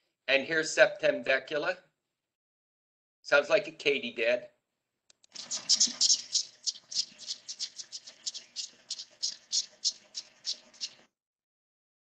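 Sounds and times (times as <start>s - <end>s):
cicada song through speaker: 5.4s - 11.0s.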